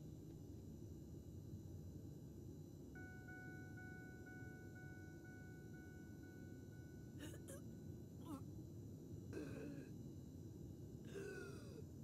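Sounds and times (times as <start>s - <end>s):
faint high ringing tone: 2.3s - 8.9s.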